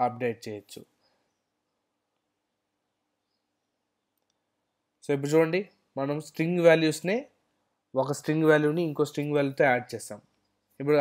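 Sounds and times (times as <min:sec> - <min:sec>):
very faint clicks: 0:04.1 - 0:04.5.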